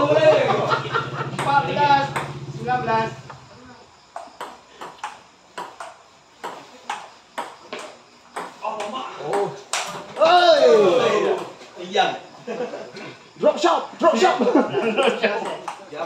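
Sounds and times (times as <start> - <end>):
loud shout: 10.2 - 11.4
table tennis ball clicks: 15.4 - 15.9.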